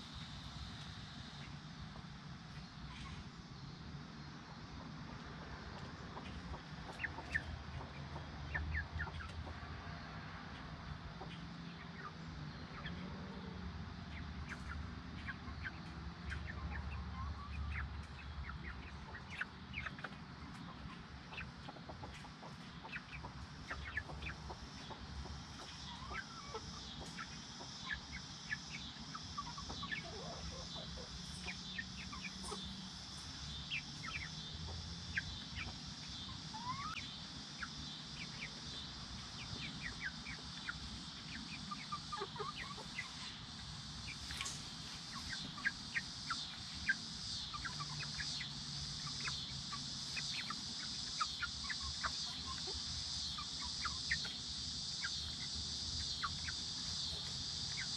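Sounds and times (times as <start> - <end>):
chicks peeping: 0.0 - 57.9.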